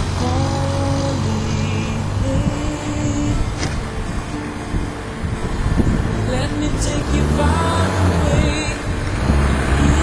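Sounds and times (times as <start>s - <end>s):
car engine and road rumble: 0.0s - 10.0s
music playing: 0.0s - 10.0s.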